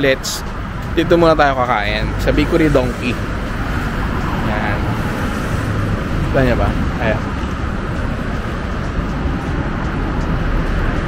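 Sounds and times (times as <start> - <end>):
road traffic hiss: 0.0 - 11.0
wind buffeting microphone: 0.0 - 11.0.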